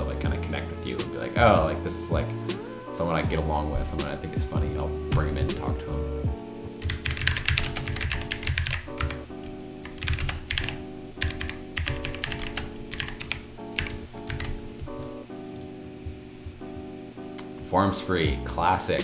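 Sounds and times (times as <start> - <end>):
soft background music: 0.0 - 19.0.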